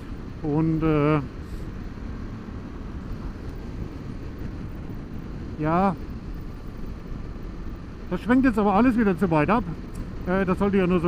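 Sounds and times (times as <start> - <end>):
wind rushing: 0.0 - 10.3
motorcycle engine cruising: 0.0 - 11.0.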